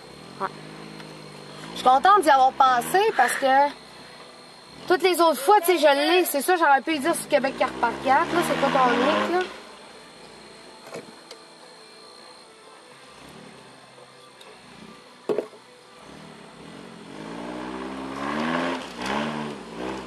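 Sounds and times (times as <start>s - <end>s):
vehicle engine revving: 0.0s - 5.6s, 6.5s - 10.5s, 13.1s - 13.8s, 14.6s - 15.1s, 16.0s - 20.0s.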